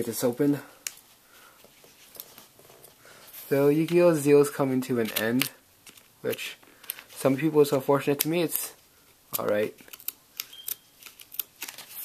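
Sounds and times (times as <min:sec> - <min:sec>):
paper crackling while unfolded: 0:09.9 - 0:12.0.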